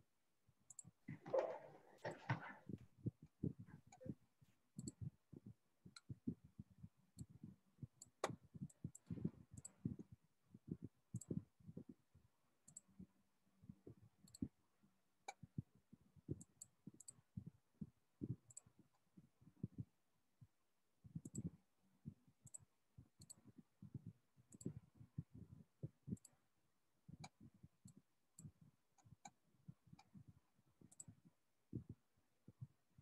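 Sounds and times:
keyboard and mouse clicks: 0.7s - 2.7s, 4.8s - 5.1s, 14.2s - 14.5s, 21.2s - 21.5s.

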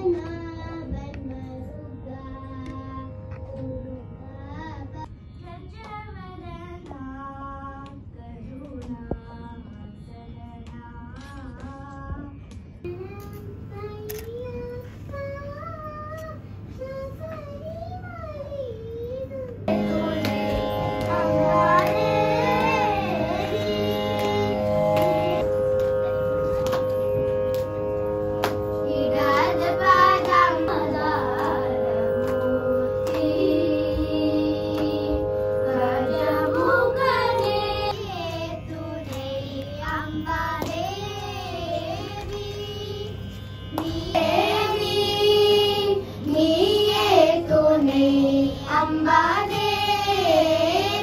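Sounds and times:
shruti box drone: 0.0s - 5.1s, 18.9s - 51.0s
child singing: 0.0s - 25.1s, 28.8s - 51.0s.

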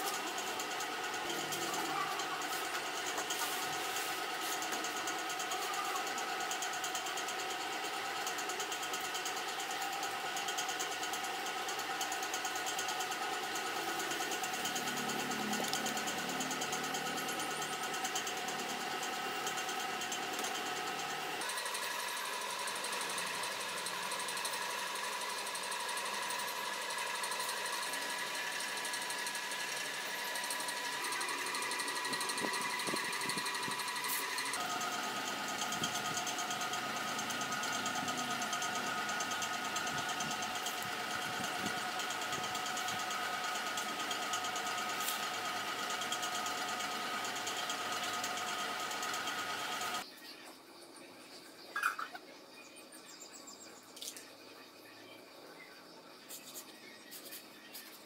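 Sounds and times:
machine hum of held tones: 0.0s - 58.0s.

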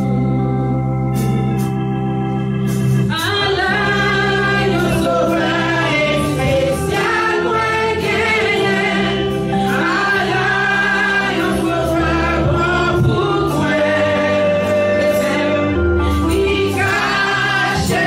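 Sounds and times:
electric keyboard: 0.0s - 18.0s
guitar: 0.0s - 18.0s
group singing gospel: 3.1s - 18.0s.

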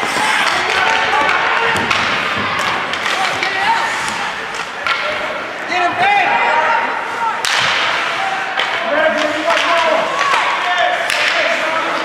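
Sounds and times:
hockey puck struck crack: 0.4s - 3.6s.

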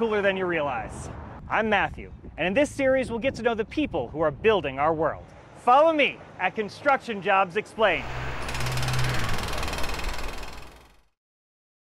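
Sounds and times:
low hum: 8.0s - 11.1s
rapid mechanical hammering: 8.0s - 11.2s.

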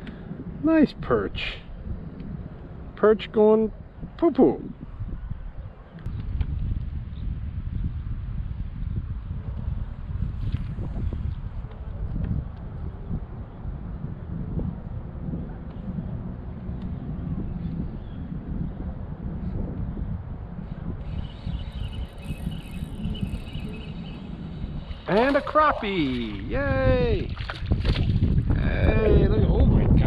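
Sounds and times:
wind buffeting microphone: 0.0s - 30.0s
man shouting excitedly: 25.3s - 27.3s.

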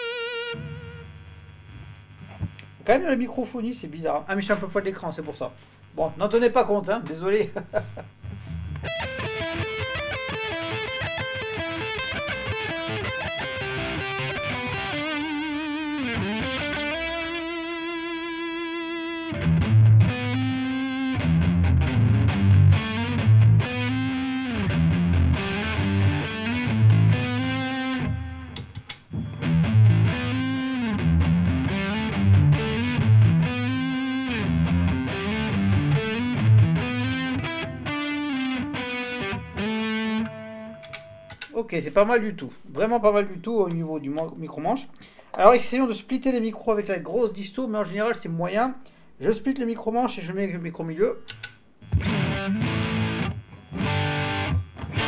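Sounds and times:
distorted electric guitar: 0.0s - 3.0s, 4.5s - 41.6s, 51.3s - 55.0s.

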